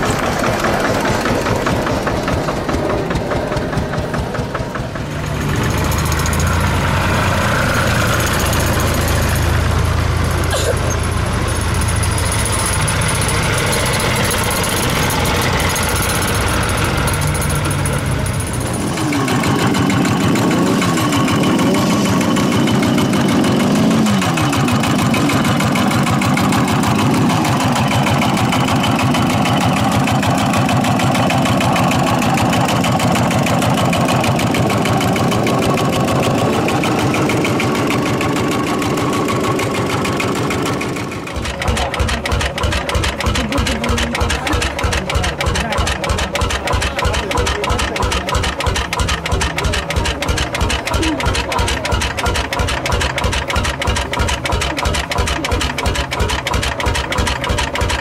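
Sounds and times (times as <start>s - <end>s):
motorcycle engine revving: 0.0s - 58.0s
single-cylinder engine slow beats: 0.0s - 58.0s
tractor engine running: 0.0s - 58.0s.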